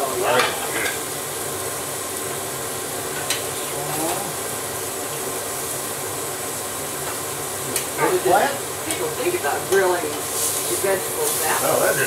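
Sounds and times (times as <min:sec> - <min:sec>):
fan running: 0:00.0 - 0:12.0
meat sizzling on a grill: 0:00.0 - 0:12.0.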